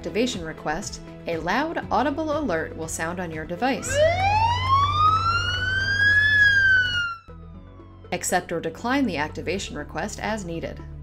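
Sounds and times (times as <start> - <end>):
rising and falling siren-like alert: 3.8 - 8.1.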